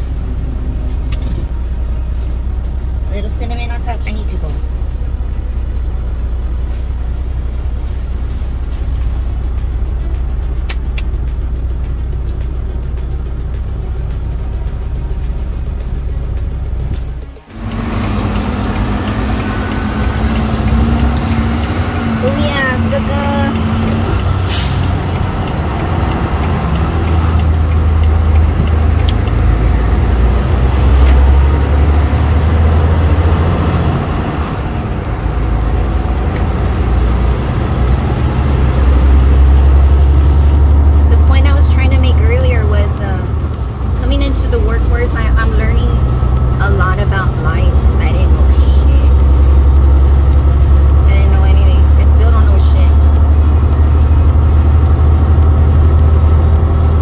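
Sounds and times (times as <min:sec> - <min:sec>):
road noise: 0:00.0 - 0:57.0
truck engine drone: 0:00.0 - 0:57.0.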